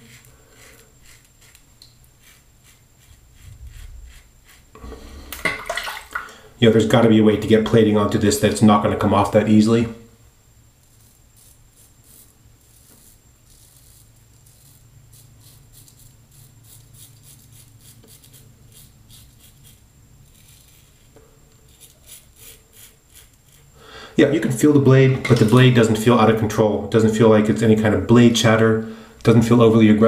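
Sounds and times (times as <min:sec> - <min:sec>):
razor scraping stubble: 0:00.0 - 0:05.2, 0:10.8 - 0:23.7.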